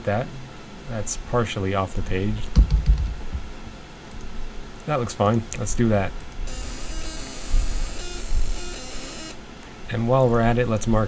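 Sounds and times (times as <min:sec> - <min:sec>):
laser marking machine buzzing: 0:06.5 - 0:09.4.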